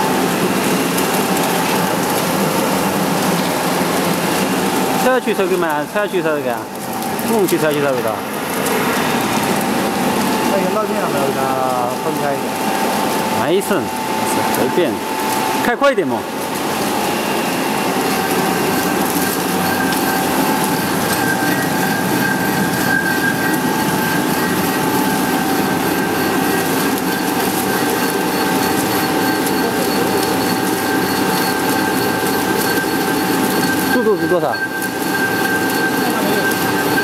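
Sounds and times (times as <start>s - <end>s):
high-pitched whine: 0.0s - 37.0s
machine rollers running: 0.0s - 37.0s.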